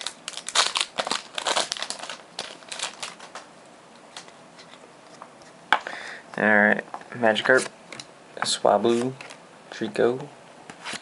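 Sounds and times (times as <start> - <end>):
foil wrapper crinkling: 0.0 - 3.5.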